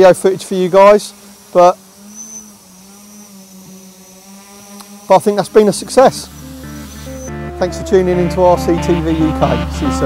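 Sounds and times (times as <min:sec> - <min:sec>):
drone motors humming: 0:00.0 - 0:10.0.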